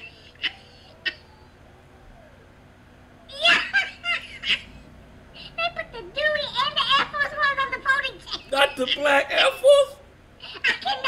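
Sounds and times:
man laughing: 0:08.3 - 0:11.0.

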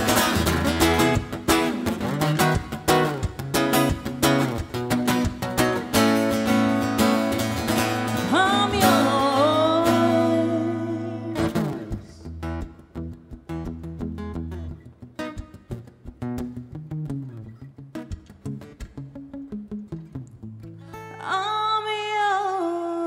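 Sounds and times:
acoustic guitar strummed and picked: 0:00.0 - 0:23.0.

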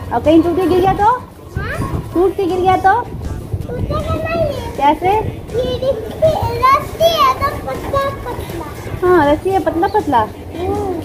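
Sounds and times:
child vocalising sing-song: 0:01.6 - 0:02.1, 0:03.6 - 0:09.0.

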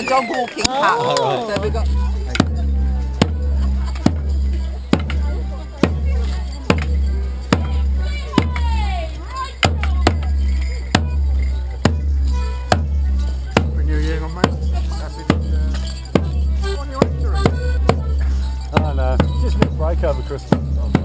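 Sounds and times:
bass drum beat: 0:01.1 - 0:21.0.

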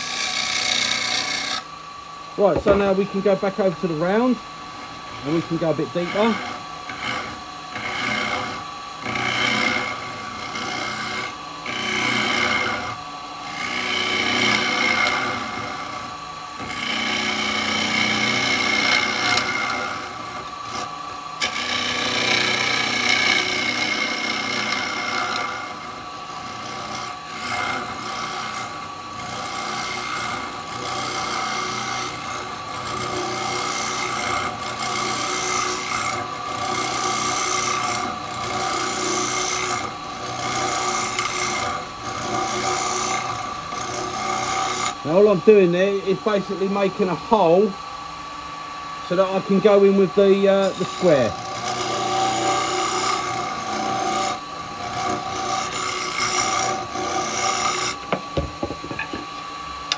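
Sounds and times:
cutter scraping spinning wood: 0:00.0 - 0:59.9
wood lathe whine: 0:00.0 - 0:59.9.

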